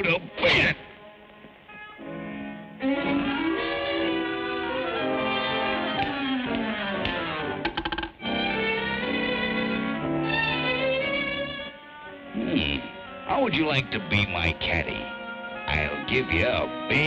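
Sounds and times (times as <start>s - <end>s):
orchestral strings music: 0.0s - 7.6s, 8.2s - 17.0s.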